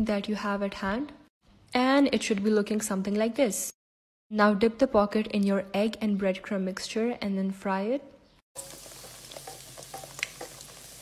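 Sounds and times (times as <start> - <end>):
deep-frying sizzle and crackles: 8.6 - 11.0.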